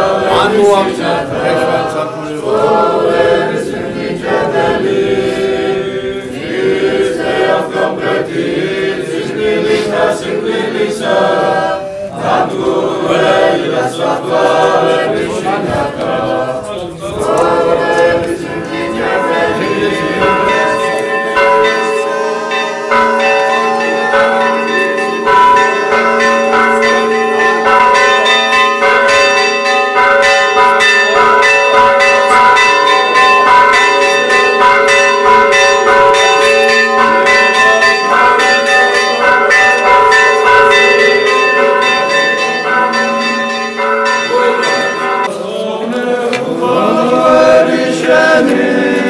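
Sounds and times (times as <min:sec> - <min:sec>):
church bells pealing: 0:00.0 - 0:45.4.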